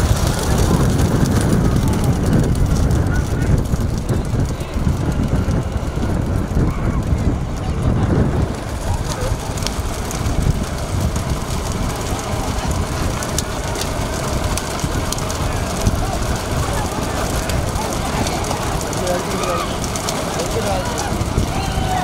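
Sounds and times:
vehicle road noise: 0.0 - 22.0
wind noise on microphone: 0.0 - 22.0.

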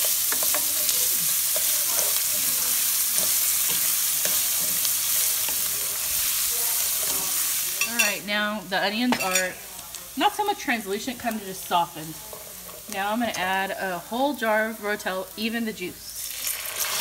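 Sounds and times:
rice and onion sizzling in oil: 0.0 - 17.0.

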